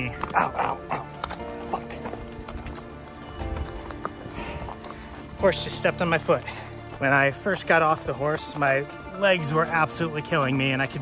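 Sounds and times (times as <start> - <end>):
background music: 0.0 - 11.0
horse hooves on dirt: 0.0 - 11.0.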